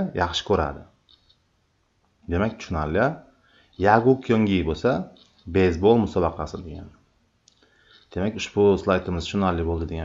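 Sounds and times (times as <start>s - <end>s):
person speaking: 0.0s - 1.0s, 2.2s - 7.0s, 8.0s - 10.0s
computer mouse clicks: 1.1s - 1.4s.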